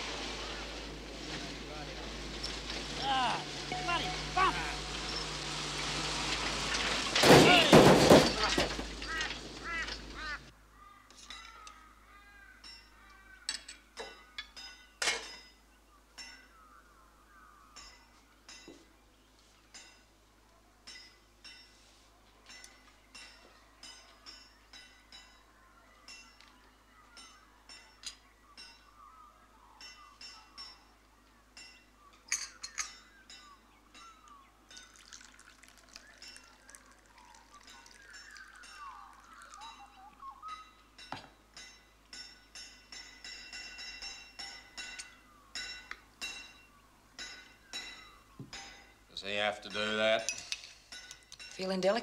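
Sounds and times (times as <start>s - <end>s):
cutlery clinking on plates: 13.5s - 15.6s, 31.6s - 35.2s, 49.7s - 51.9s
tea pouring into a cup: 34.8s - 39.9s.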